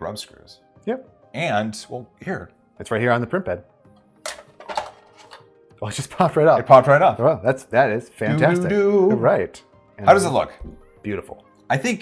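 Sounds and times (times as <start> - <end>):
soft background music: 0.0 - 12.0
metallic clicks and scrapes: 4.3 - 5.4.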